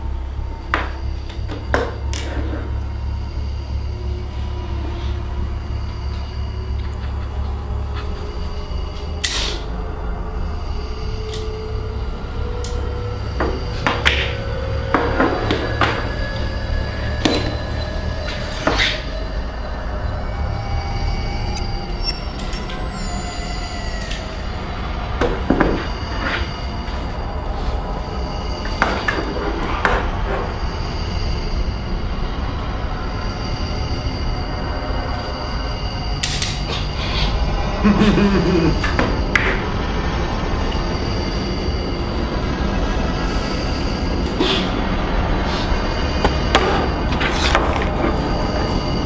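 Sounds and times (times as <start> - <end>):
low droning film score: 0.0 - 49.0.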